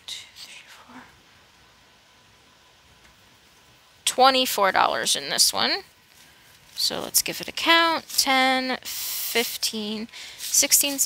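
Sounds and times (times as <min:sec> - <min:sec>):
woman whispering: 0:00.0 - 0:01.2.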